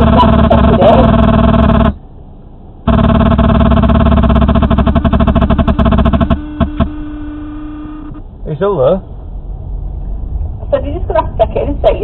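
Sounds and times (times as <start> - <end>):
harsh kazoo-like buzz: 0.0 - 2.0, 2.9 - 8.2
faint steady hum: 0.0 - 12.0.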